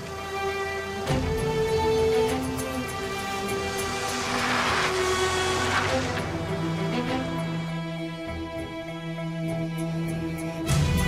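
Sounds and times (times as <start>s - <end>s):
dramatic background music: 0.0s - 11.0s
car speeding off: 1.4s - 8.4s.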